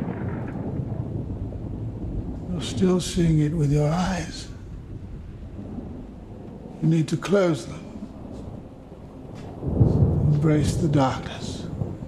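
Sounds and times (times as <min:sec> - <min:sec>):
man speaking: 0:02.5 - 0:04.6, 0:06.8 - 0:08.0, 0:10.3 - 0:11.7.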